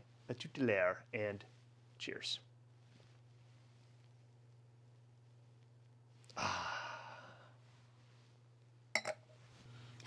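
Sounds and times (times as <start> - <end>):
man sighing: 6.3 - 7.6.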